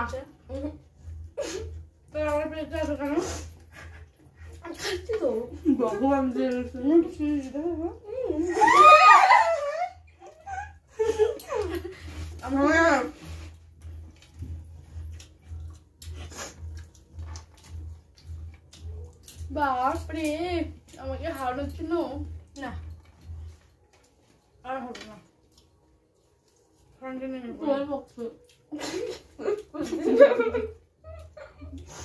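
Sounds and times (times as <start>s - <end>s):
low pulsing hum: 0.0s - 8.7s, 9.4s - 25.3s.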